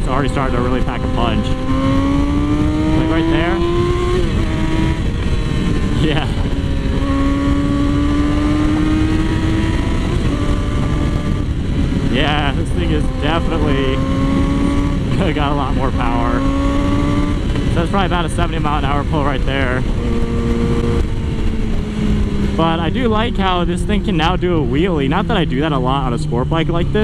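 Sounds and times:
wind rush: 0.0 - 25.4
motorcycle engine accelerating: 0.0 - 27.0.

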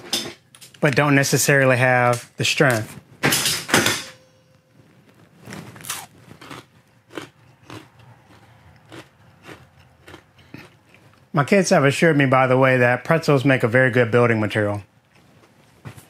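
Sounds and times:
pretzel crunching: 4.9 - 11.3.

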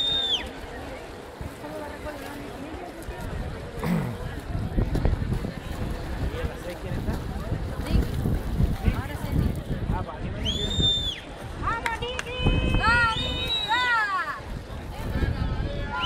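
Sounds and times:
wind gusting on microphone: 1.0 - 16.0
high whistle: 10.4 - 11.2.

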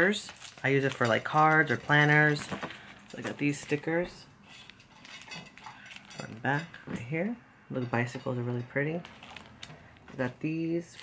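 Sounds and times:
paper stickers rustling: 0.0 - 6.1, 9.0 - 11.0.

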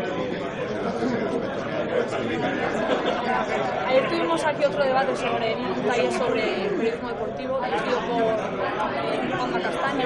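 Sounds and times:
indistinct background chatter: 0.0 - 10.0.

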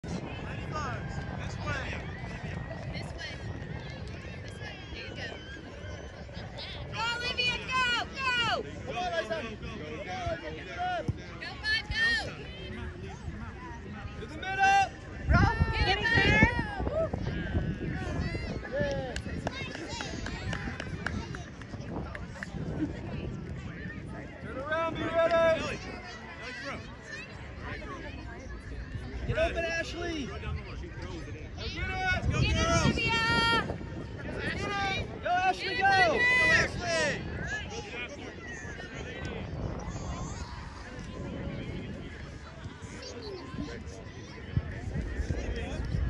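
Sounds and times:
people calling and shouting: 0.0 - 46.0.

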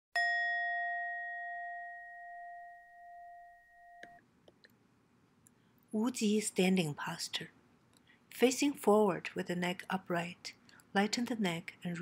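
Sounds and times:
bell ringing: 0.2 - 4.2.

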